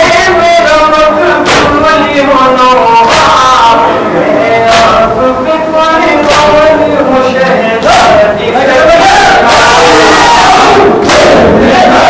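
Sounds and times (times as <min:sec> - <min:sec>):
men chanting together: 0:00.0 - 0:12.0
hands beating on chests: 0:01.4 - 0:02.1, 0:03.0 - 0:03.7, 0:06.2 - 0:06.7.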